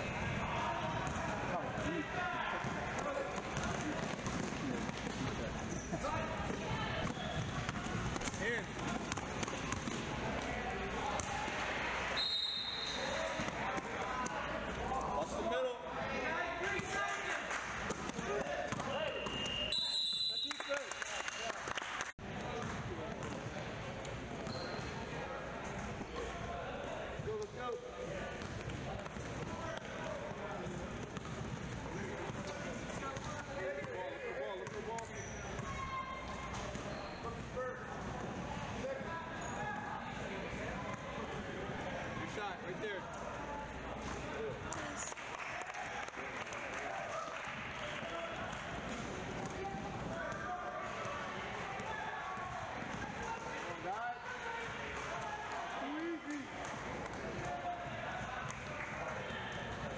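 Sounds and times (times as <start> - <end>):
voices and shouts: 35.5 - 36.7, 49.5 - 59.9.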